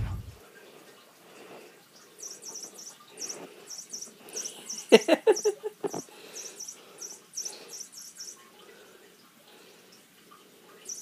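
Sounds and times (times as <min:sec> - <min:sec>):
toy electronic chirps: 0:02.2 - 0:05.6, 0:06.3 - 0:08.4.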